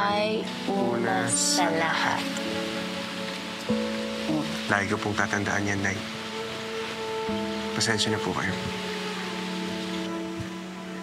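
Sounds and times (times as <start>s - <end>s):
soft music of held notes: 0.0s - 11.0s.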